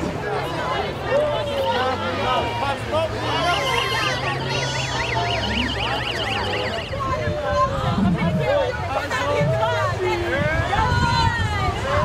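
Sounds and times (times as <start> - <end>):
crowd chatter: 0.0 - 12.0
siren in a fast yelp: 3.6 - 7.4.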